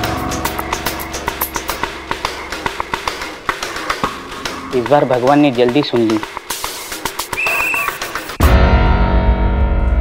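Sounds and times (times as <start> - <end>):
sharp percussive ticks: 0.0 - 8.4.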